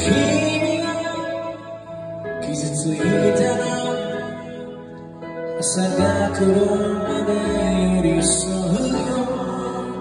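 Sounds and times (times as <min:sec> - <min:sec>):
live pop band: 0:00.0 - 0:10.0
man singing: 0:00.0 - 0:10.0.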